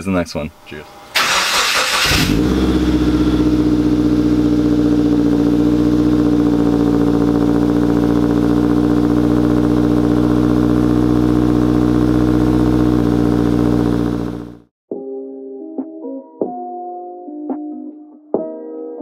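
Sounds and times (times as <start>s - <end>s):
car engine idling: 0.6s - 14.6s.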